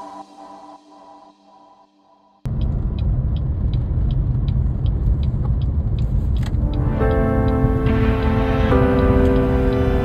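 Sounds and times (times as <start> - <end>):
vehicle road noise rumble: 2.5 - 10.0.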